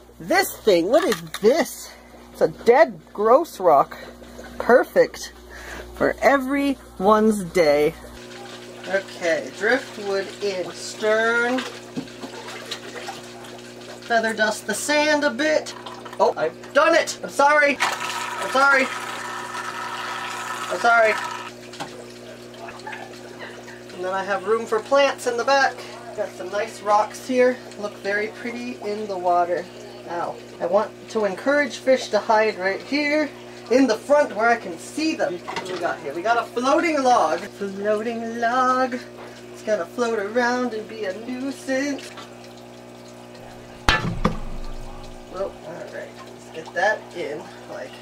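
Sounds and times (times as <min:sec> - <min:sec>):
water settling: 0:00.0 - 0:03.4, 0:41.4 - 0:47.4
low steady hum: 0:00.0 - 0:11.8, 0:42.5 - 0:46.3
water splashing and dripping: 0:08.2 - 0:14.3, 0:41.4 - 0:47.3
steady low hum: 0:43.3 - 0:45.6.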